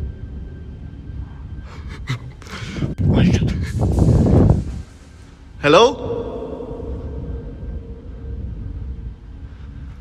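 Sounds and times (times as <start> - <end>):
footsteps in concrete tunnel: 3.3 - 10.0.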